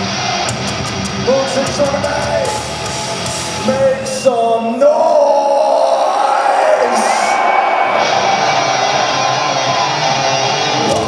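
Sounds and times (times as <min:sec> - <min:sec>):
crowd cheering: 0:00.0 - 0:11.0
heavy metal band playing: 0:00.0 - 0:11.0
person shouting vocals: 0:04.8 - 0:07.5.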